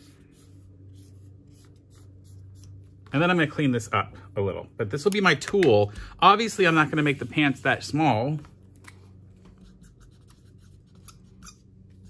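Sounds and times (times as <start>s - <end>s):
marker pen scratching whiteboard: 0.0s - 3.0s, 9.5s - 11.7s.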